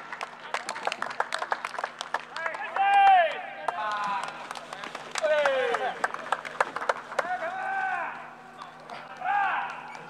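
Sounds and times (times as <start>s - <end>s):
people clapping: 0.0s - 7.9s, 8.7s - 10.0s.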